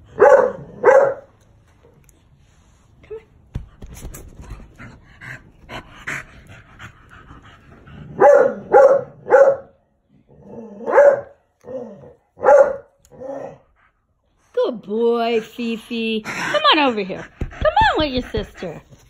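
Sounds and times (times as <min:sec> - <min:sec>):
dog barking: 0:00.1 - 0:01.3, 0:08.2 - 0:09.8, 0:10.8 - 0:11.4, 0:12.4 - 0:13.0.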